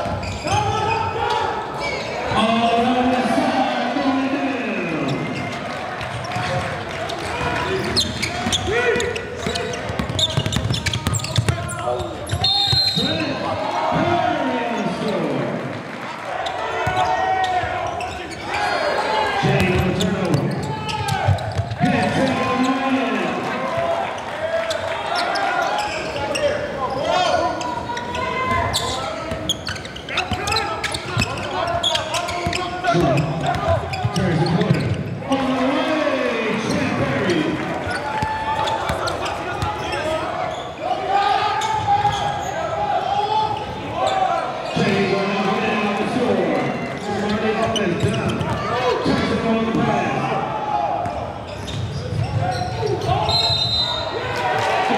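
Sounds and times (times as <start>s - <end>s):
players and spectators shouting: 0.0s - 54.9s.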